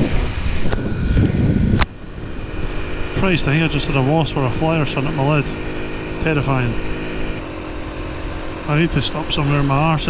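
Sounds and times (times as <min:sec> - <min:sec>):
wind buffeting microphone: 0:00.0 - 0:04.8
motorcycle engine running: 0:00.0 - 0:10.0.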